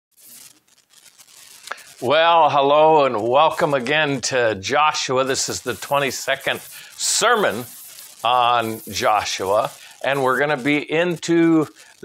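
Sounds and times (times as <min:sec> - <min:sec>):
rustling on lapel microphone: 0:00.1 - 0:12.0
small clicks: 0:00.2 - 0:02.1.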